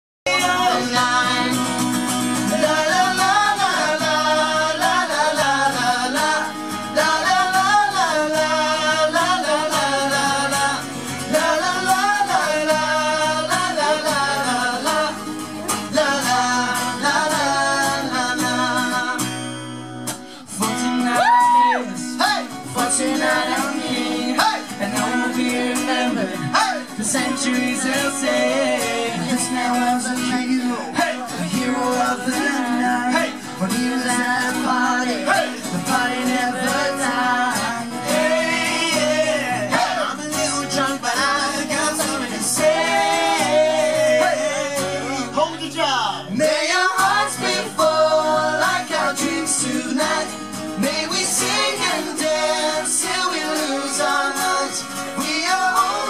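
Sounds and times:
male vocal group singing: 0:00.3 - 0:19.6, 0:20.3 - 0:56.0
strummed acoustic guitar: 0:00.3 - 0:56.0.

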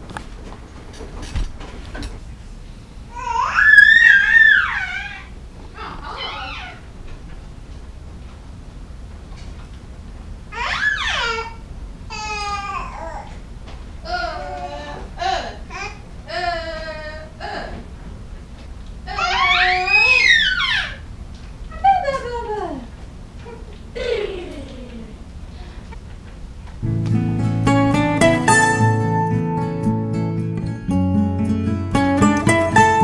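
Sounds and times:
baby squealing: 0:03.2 - 0:06.9, 0:10.6 - 0:11.6, 0:19.1 - 0:21.1.

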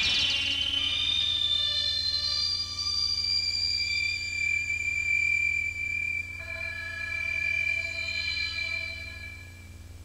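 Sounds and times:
high whistle-like electronic tone: 0:00.0 - 0:09.8
low electronic hum: 0:00.0 - 0:10.0.

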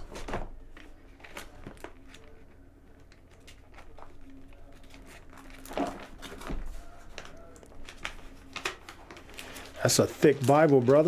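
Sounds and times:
book pages turning: 0:00.0 - 0:11.0.

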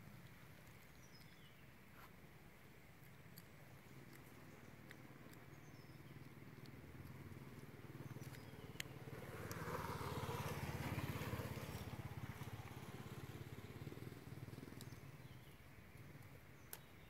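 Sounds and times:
faint clicks: 0:03.0 - 0:09.7
motorcycle engine passing by: 0:05.6 - 0:16.2.

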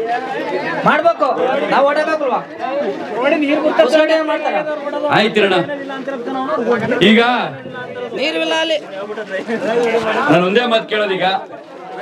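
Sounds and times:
crowd chatter: 0:00.0 - 0:12.0
man speaking into a microphone: 0:00.8 - 0:11.6.

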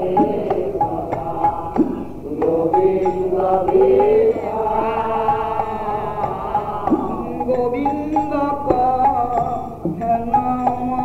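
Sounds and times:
person chanting devotional song: 0:00.0 - 0:11.0.

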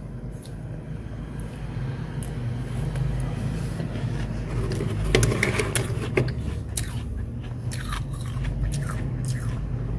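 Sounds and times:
freezer humming: 0:02.2 - 0:09.9.

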